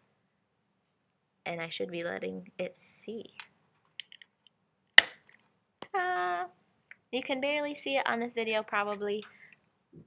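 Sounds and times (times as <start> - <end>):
sharp snap: 5.0 - 5.4.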